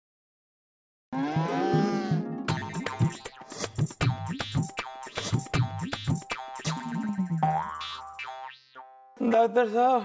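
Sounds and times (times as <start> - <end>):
tv theme music with quick beat: 1.6 - 7.4.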